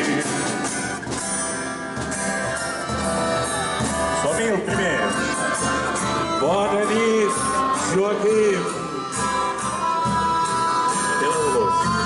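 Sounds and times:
folk band with violin and accordion: 0:00.0 - 0:12.0
person singing: 0:03.6 - 0:12.0.

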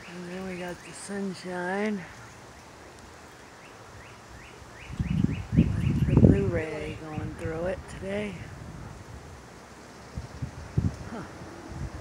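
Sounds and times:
faint outdoor background noise: 0:00.0 - 0:12.0
bird chirping: 0:03.3 - 0:07.0.

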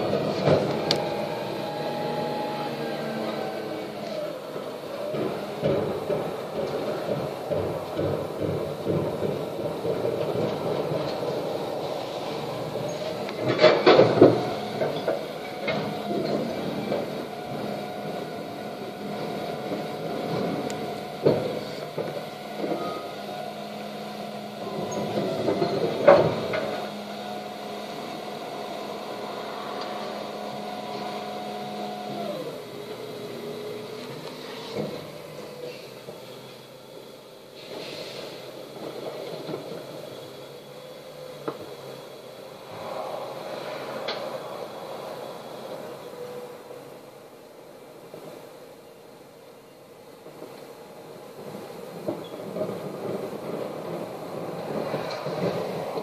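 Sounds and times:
wheelie bins banging: 0:00.0 - 0:36.2
refuse lorry hydraulic whine: 0:00.0 - 0:56.0.

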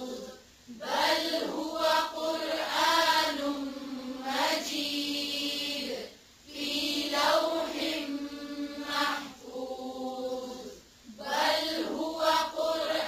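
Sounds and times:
person chanting recitation: 0:00.0 - 0:13.0.

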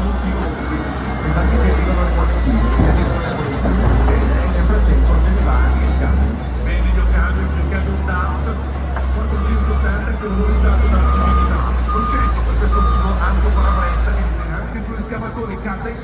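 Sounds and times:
diesel engines rumbling: 0:00.0 - 0:16.0
backup alarm beeping: 0:10.6 - 0:14.0.

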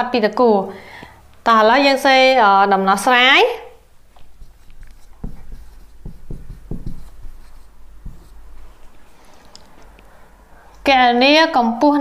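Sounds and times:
marker writing on whiteboard: 0:04.1 - 0:09.8.

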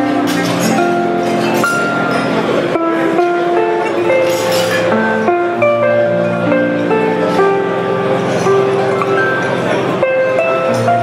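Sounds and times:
harp playing slow melody: 0:00.0 - 0:11.0.

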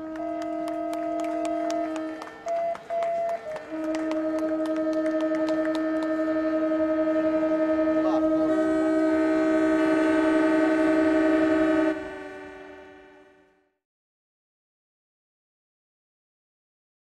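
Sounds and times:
boat horns sounding: 0:00.0 - 0:13.6.

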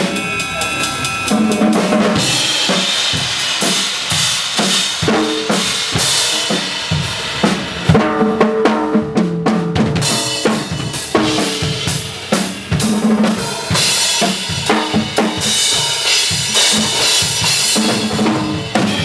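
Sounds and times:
cymbal wash: 0:00.0 - 0:08.2, 0:10.0 - 0:19.0
acoustic drum kit: 0:00.0 - 0:19.0.

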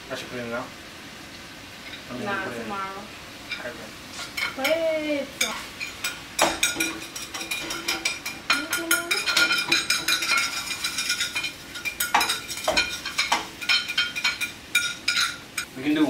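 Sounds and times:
metal utensils scraping a pan: 0:05.4 - 0:15.7.

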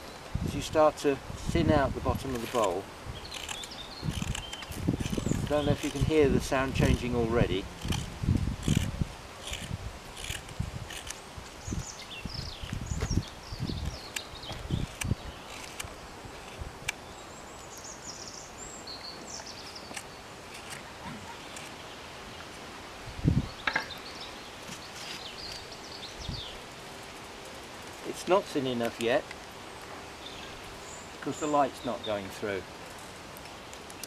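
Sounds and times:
wind bumping microphone: 0:00.0 - 0:16.9, 0:23.0 - 0:24.0, 0:26.2 - 0:26.6.

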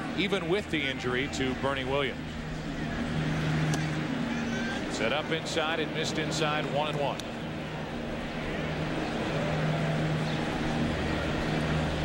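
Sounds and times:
ballpark crowd noise: 0:00.0 - 0:12.0
constant low hum: 0:00.0 - 0:12.0.

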